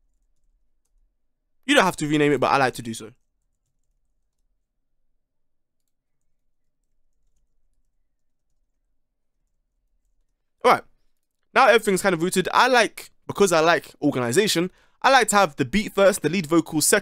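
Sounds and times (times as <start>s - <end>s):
man speaking: 1.6s - 3.2s, 10.6s - 10.9s, 11.6s - 17.0s.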